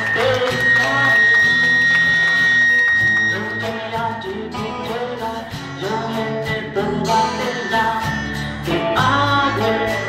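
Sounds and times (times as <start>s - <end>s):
live band with guitars and bass: 0.0s - 10.0s.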